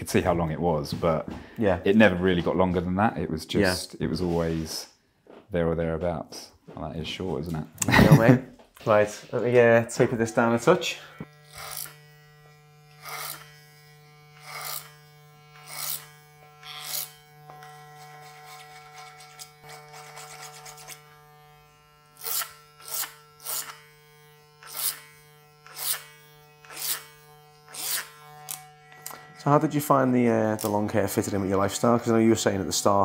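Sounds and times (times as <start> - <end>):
hair clipper humming: 9.5 - 33.0
clipper rasping through hair: 11.2 - 29.4, 30.5 - 31.4.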